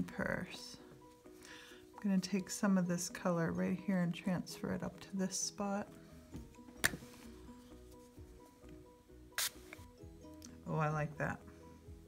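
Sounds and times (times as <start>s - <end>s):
soft slow background music: 0.0s - 12.0s
short hiss: 9.4s - 9.8s.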